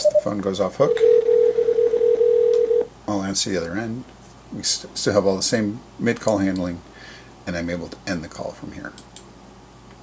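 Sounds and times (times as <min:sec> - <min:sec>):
telephone ringback tone: 0:00.9 - 0:02.9.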